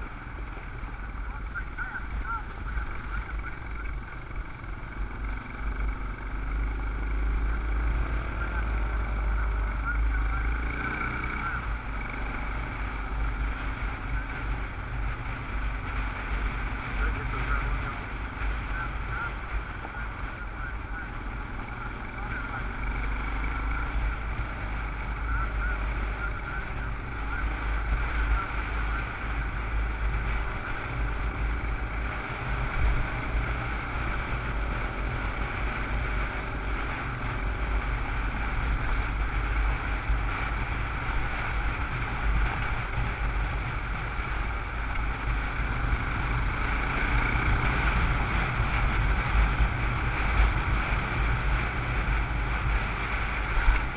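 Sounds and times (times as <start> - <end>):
motorcycle engine running: 0.0 - 53.9.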